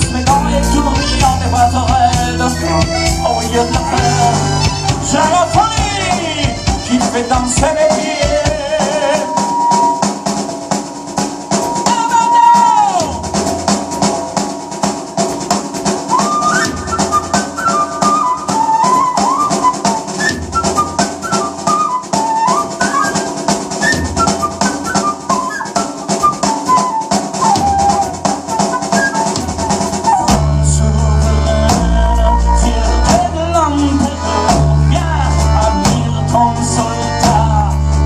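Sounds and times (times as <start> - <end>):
heavy bass: 0.0 - 9.0, 30.2 - 38.0
distorted guitars: 0.0 - 10.0, 30.3 - 38.0
flute melody: 0.0 - 38.0
rock drum beat: 0.0 - 38.0.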